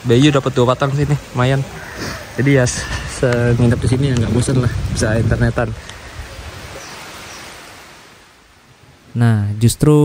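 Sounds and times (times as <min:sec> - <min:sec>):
heavy rain falling: 0:00.0 - 0:09.7.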